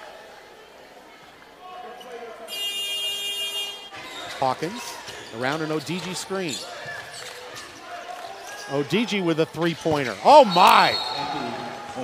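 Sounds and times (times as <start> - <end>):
arena crowd noise: 0.0 - 12.0
buzzer horn: 2.5 - 3.9.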